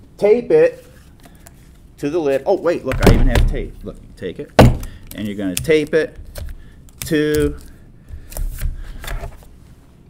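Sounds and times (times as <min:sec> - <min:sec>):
tape and paper rustling: 0:05.1 - 0:09.5.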